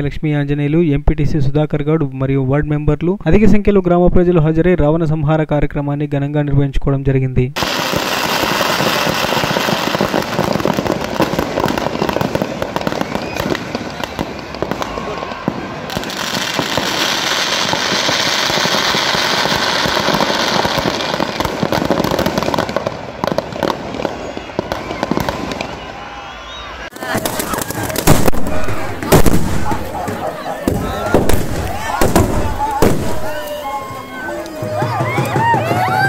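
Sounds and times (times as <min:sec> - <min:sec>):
firecrackers popping rapidly: 0:07.6 - 0:26.0, 0:26.9 - 0:36.0
large crowd voices: 0:07.7 - 0:20.5, 0:23.9 - 0:36.0
loud hissing rush: 0:27.2 - 0:34.5.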